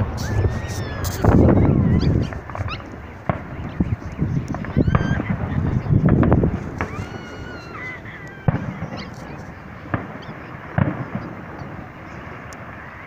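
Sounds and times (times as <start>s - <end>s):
background haze: 0.0s - 13.0s
distant firework bangs: 0.0s - 13.0s.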